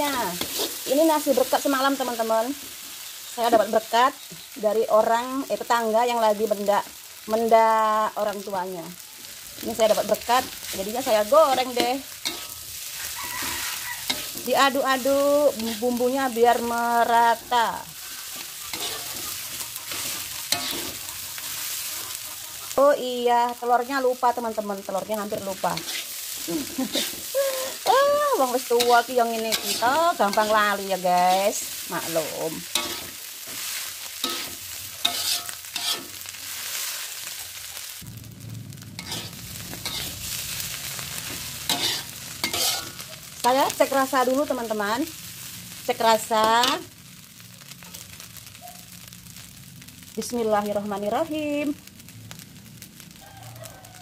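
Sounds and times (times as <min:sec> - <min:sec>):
rice sizzling in a wok: 0:00.0 - 0:54.0
metal spatula scraping wok: 0:00.1 - 0:03.8, 0:09.3 - 0:23.3, 0:24.2 - 0:38.0, 0:38.9 - 0:47.0.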